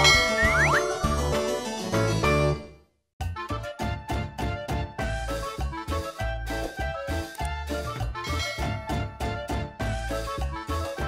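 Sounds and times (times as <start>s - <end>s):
upbeat children's music: 0.0s - 11.0s
cartoon boing sound effect: 0.3s - 0.8s.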